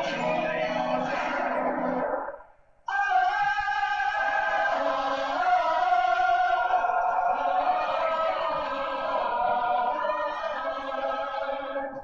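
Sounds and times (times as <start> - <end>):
choir-like voices holding notes: 0.0 - 12.0.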